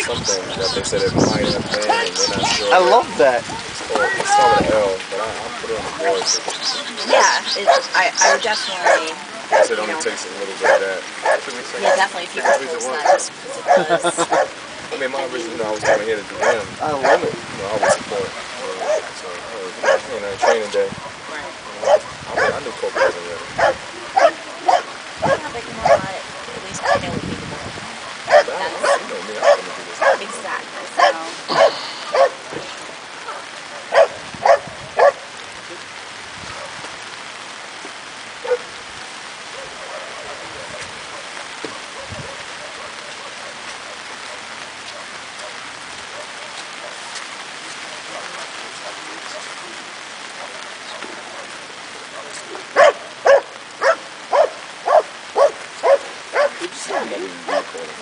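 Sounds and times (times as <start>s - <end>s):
dog barking: 7.1s - 10.0s, 10.6s - 14.8s, 15.7s - 27.2s, 28.0s - 32.5s, 33.2s - 35.3s, 36.5s - 36.9s, 38.4s - 38.8s, 39.4s - 47.2s, 47.9s - 49.6s, 50.3s - 57.9s.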